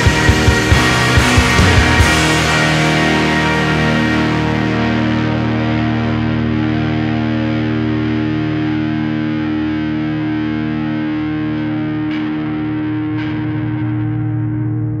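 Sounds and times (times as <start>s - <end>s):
distorted electric guitar chord: 0.0s - 15.0s.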